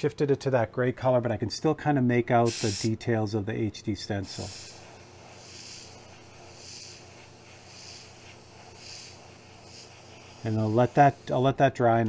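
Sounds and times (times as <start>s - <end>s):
airbrush spraying hiss: 2.4s - 3.0s, 4.2s - 11.6s.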